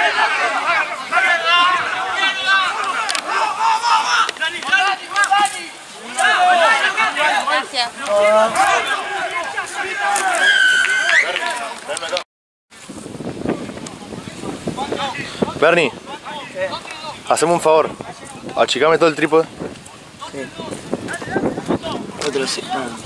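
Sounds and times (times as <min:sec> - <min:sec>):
players calling: 0:00.0 - 0:12.2, 0:13.8 - 0:23.0
spectators yelling: 0:00.0 - 0:12.2.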